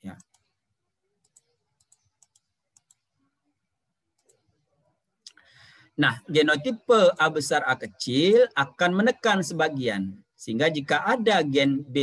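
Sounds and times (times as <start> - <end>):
computer mouse clicks: 0.1 - 0.5, 1.2 - 3.1, 4.2 - 4.4
person speaking: 6.0 - 12.0.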